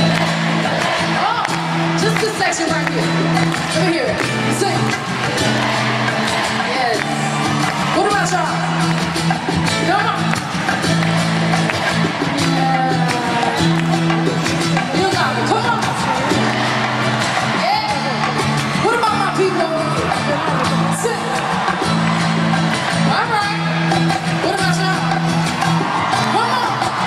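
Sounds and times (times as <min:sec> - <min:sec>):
crowd singing along: 0:00.0 - 0:02.6
live band playing pop song: 0:00.0 - 0:27.0.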